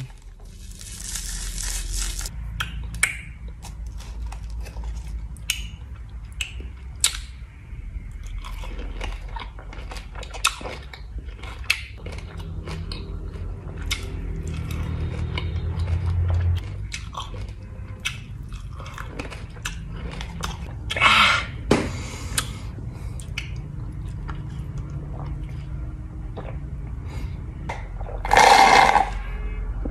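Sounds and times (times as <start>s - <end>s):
biting and chewing lemon: 0.0s - 7.4s, 8.1s - 21.3s.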